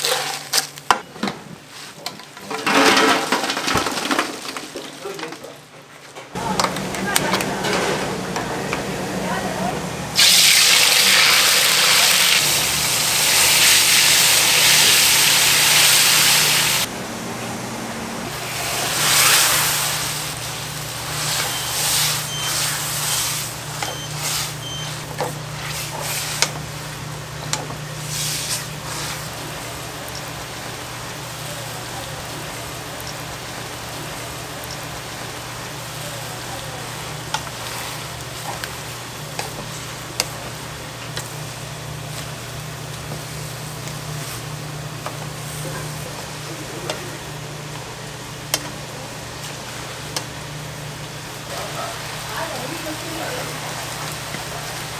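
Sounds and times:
sauce sizzling in hot pan: 10.2 - 16.9, 18.5 - 27.2.

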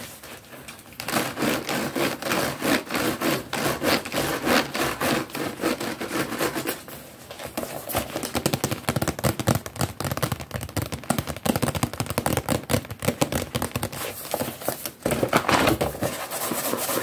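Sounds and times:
heavy rubbing on a box: 1.1 - 7.0, 15.8 - 17.0
tapping and scratching on a box: 7.5 - 17.0.

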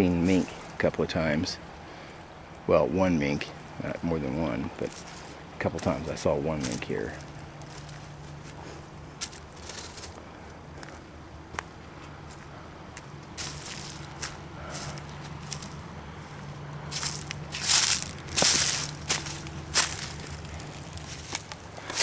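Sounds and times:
footsteps through dry leaves: 4.8 - 22.0.

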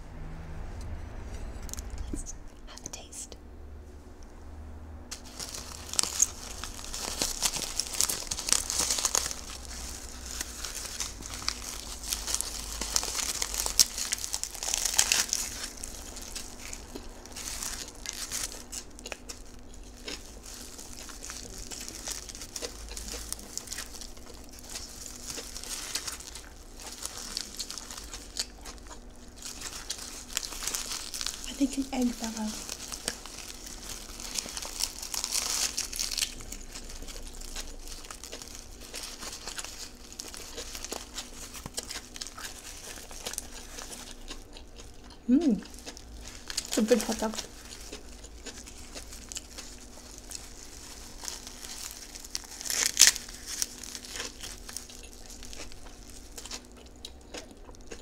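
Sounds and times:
chewing with wet mouth sounds: 5.1 - 58.0
seaweed wrapper crackling: 5.1 - 58.0.

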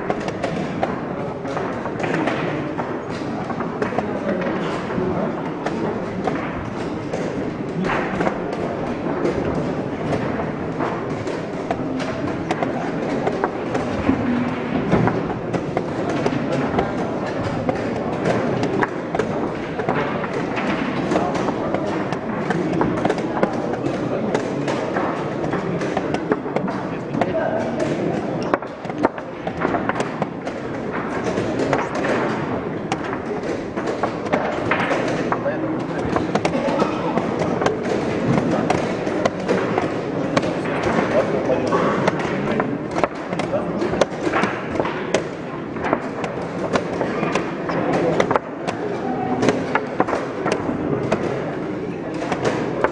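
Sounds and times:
indistinct voices: 0.0 - 52.9.

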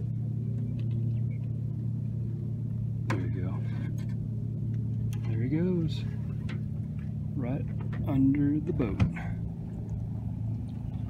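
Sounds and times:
boat motor humming: 0.0 - 11.0.

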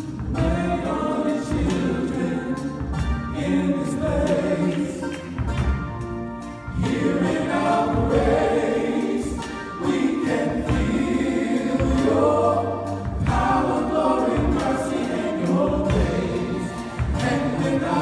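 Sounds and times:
men singing in harmony: 0.0 - 5.3, 6.7 - 18.0.

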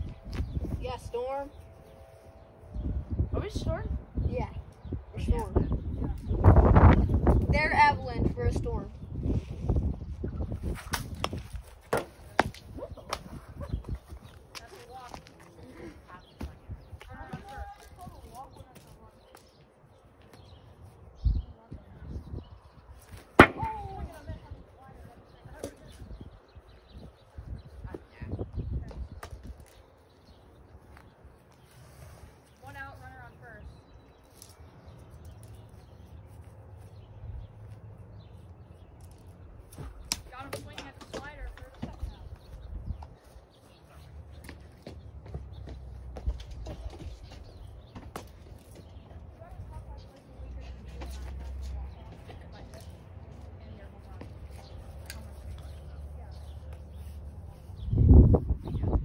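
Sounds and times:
wind rumble on microphone: 0.0 - 19.3, 20.4 - 34.1, 37.0 - 59.0.

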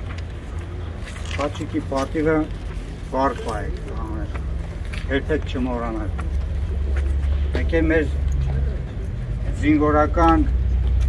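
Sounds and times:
steady low rumble: 0.0 - 11.0
man speaking: 1.4 - 2.5, 3.1 - 4.4, 5.0 - 6.2, 7.5 - 8.2, 9.4 - 10.6.

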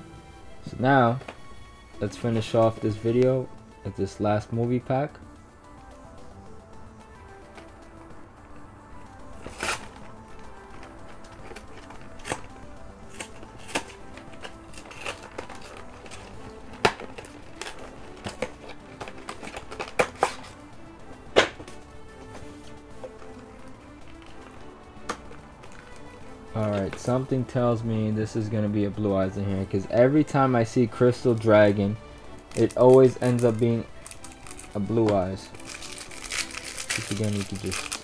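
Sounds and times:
quiet background music: 0.0 - 38.0
foil wrapper tearing and crackling: 13.1 - 16.2, 32.5 - 34.8, 35.4 - 38.0.

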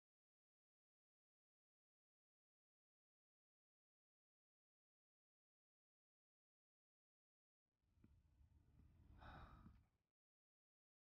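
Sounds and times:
soft exhale: 9.2 - 9.7.

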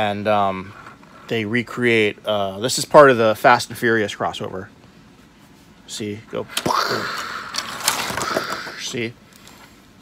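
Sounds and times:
man making explosion sound: 6.5 - 7.4.

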